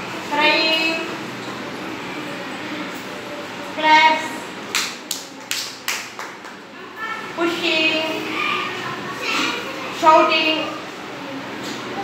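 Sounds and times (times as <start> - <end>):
child clapping hands: 4.7 - 6.6.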